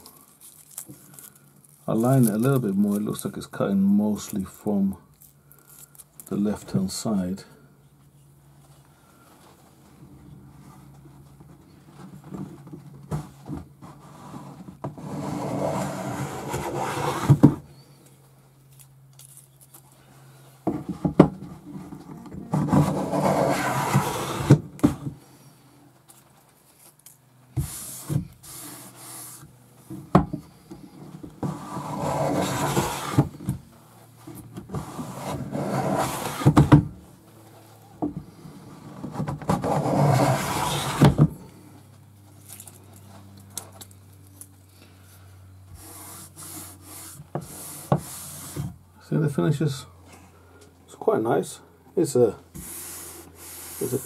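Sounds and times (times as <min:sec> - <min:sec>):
hand plane shaving wood: 0:14.0 - 0:17.5, 0:22.5 - 0:25.0, 0:31.4 - 0:33.4, 0:34.7 - 0:36.7, 0:38.8 - 0:41.3, 0:45.8 - 0:48.6, 0:52.6 - 0:54.0.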